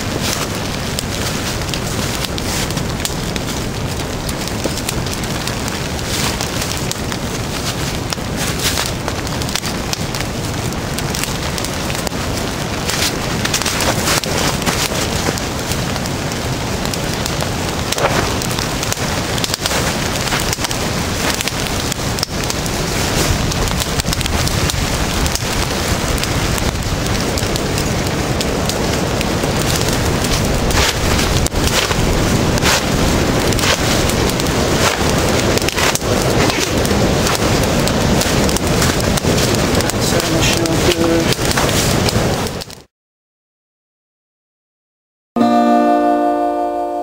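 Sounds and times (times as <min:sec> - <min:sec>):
campfire crackling: 0:00.0 - 0:42.9
fire popping and snapping: 0:00.0 - 0:42.9.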